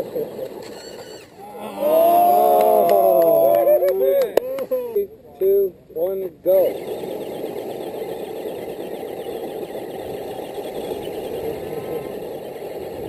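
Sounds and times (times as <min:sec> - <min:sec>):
electric motor whine: 0:06.6 - 0:13.0.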